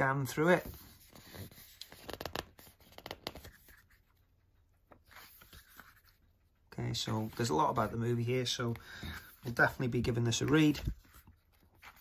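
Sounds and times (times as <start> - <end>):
paper pages rustling: 0.4 - 12.0.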